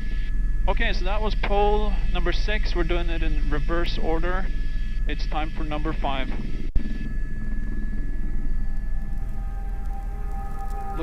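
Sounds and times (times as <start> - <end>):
helicopter rotor and engine rumble: 0.0 - 11.0
background music of sustained tones: 6.3 - 11.0.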